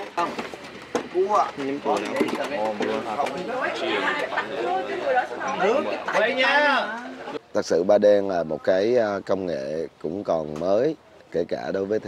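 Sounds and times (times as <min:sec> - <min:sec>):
people talking at once: 0:01.2 - 0:07.4.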